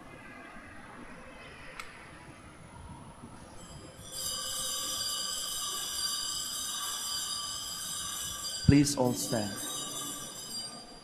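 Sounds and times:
high-pitched ringing chord: 3.5 - 11.0.

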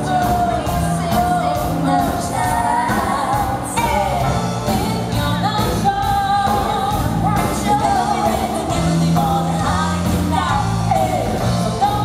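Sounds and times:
live pop band playing: 0.0 - 12.0
woman singing lead vocals: 0.0 - 12.0.

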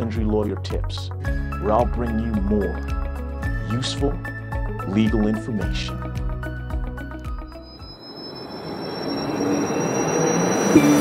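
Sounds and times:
high whistle-like gliding tone: 7.2 - 11.0
noisy whoosh riser: 7.6 - 11.0.

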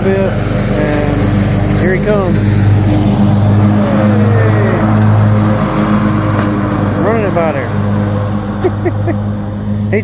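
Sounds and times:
riding lawn mower engine drone: 0.0 - 10.0.

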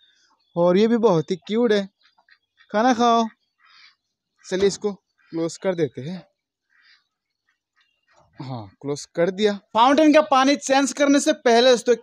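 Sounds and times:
man's voice: 4.5 - 6.2, 8.4 - 12.0.

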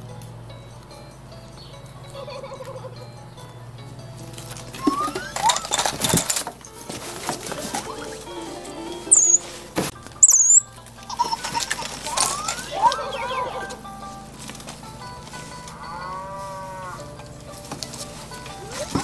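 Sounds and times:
light background music: 0.0 - 19.0
high-pitched sounds: 4.8 - 6.0, 7.7 - 13.8.

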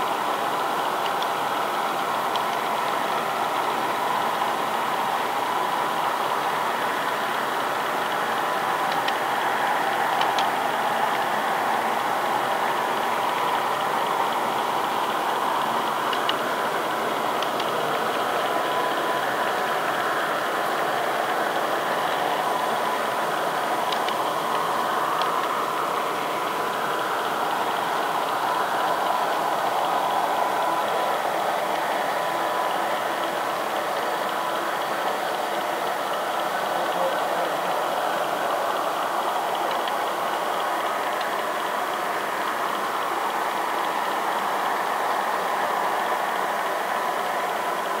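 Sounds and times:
small wheels rolling on rail: 0.0 - 48.0.

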